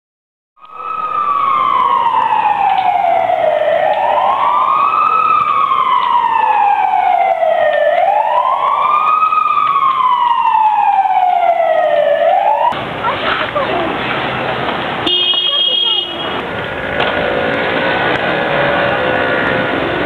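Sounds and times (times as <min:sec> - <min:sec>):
emergency siren wailing: 0:00.6 - 0:12.8, 0:15.0 - 0:20.0.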